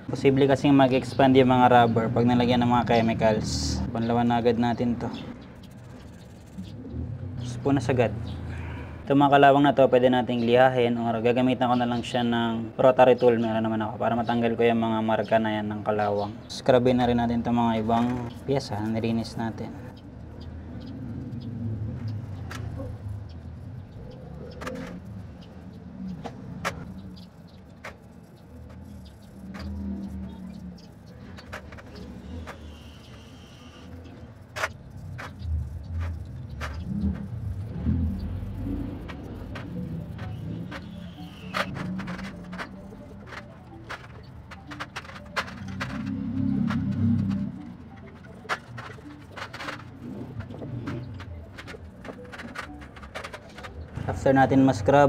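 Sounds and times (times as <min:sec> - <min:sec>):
metal parts knocking in tray: 0:39.0 - 0:53.9.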